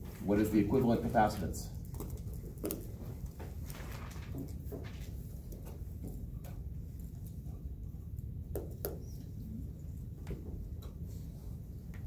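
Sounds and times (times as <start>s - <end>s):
low hum of room noise: 0.0s - 12.0s.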